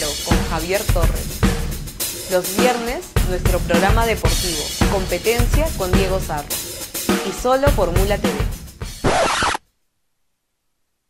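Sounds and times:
scratchy noise burst: 9.0s - 9.6s.

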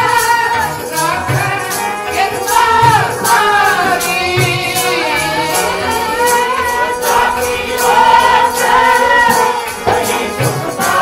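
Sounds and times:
harmonium: 0.0s - 11.0s
light percussion beat: 0.0s - 11.0s
men singing together: 0.0s - 11.0s.

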